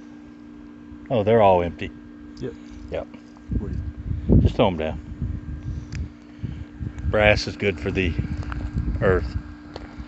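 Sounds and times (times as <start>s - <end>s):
steady low hum: 0.0s - 10.0s
wind rumbling on microphone: 2.8s - 10.0s.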